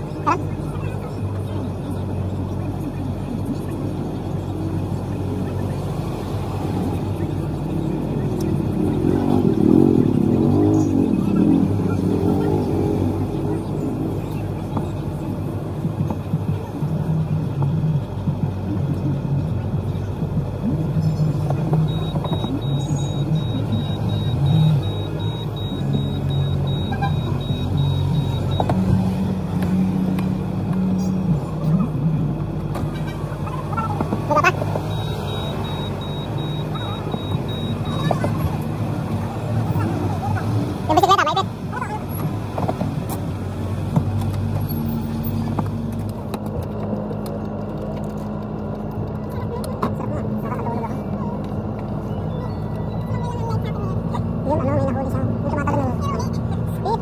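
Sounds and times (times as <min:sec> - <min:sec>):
passers-by talking: 0:00.0 - 0:57.0
vehicle and motorcycle engines: 0:00.0 - 0:57.0.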